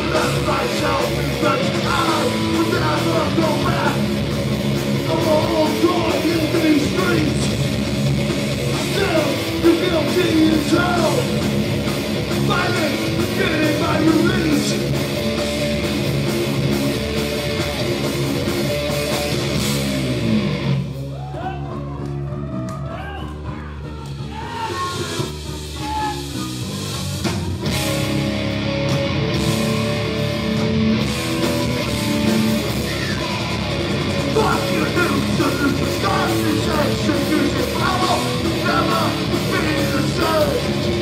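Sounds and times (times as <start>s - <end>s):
drums and cymbals: 0.0s - 21.7s, 23.3s - 41.0s
bass guitar: 0.0s - 41.0s
distorted electric guitars: 0.0s - 41.0s.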